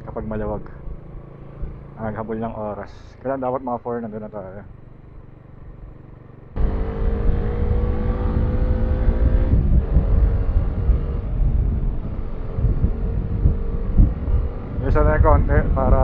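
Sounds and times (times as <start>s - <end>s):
motorcycle engine running: 0.0s - 2.8s, 4.4s - 16.0s
wind rumble on microphone: 6.6s - 16.0s.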